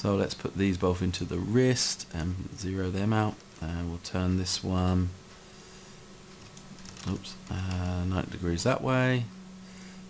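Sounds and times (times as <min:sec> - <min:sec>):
low steady hum: 0:00.0 - 0:10.0
computer mouse and keyboard clicking: 0:06.3 - 0:07.9.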